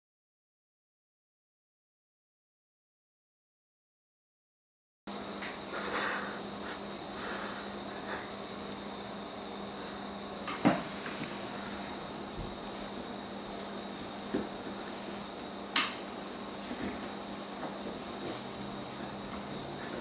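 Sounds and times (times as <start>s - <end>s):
faint steady hum: 5.1s - 20.0s.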